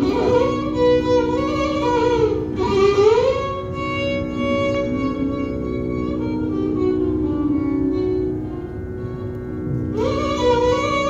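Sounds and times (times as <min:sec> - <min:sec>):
steady drone: 0:00.0 - 0:11.0
violin sliding sustained note: 0:00.0 - 0:11.0.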